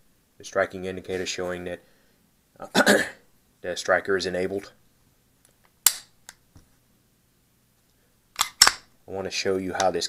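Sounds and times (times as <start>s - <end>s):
pistol mechanism clicking: 8.4s - 8.9s.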